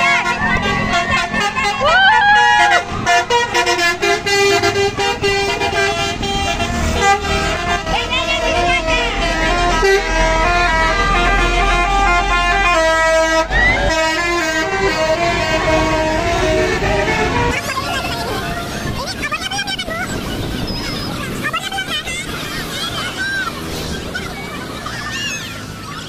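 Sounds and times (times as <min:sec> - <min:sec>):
bus horns: 0:00.0 - 0:26.0
deep engine rumble: 0:00.0 - 0:26.0
roadside crowd voices: 0:00.0 - 0:26.0.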